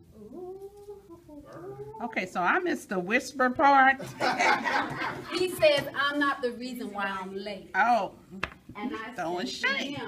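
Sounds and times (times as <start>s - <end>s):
woman speaking in sing-song tone: 1.8s - 3.9s.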